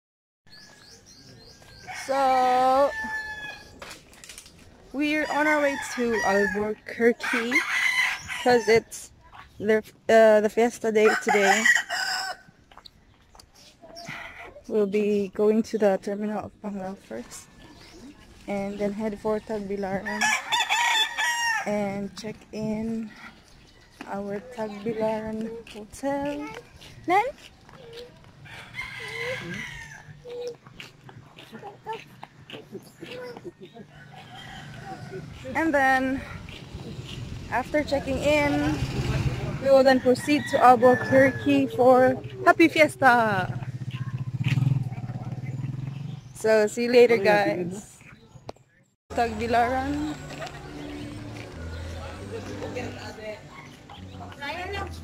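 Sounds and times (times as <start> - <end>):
small birds chirping: 0.5 - 5.9, 12.6 - 20.6, 21.8 - 39.2, 41.3 - 55.0
rooster crowing: 1.8 - 3.8, 5.3 - 8.8, 11.0 - 12.5, 20.1 - 21.7, 28.5 - 30.1, 33.9 - 35.5, 39.9 - 41.8.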